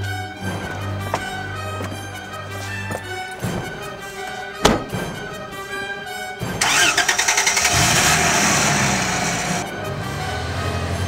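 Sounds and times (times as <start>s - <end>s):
music playing: 0.0s - 11.0s
car engine cranking and starting: 6.6s - 11.0s.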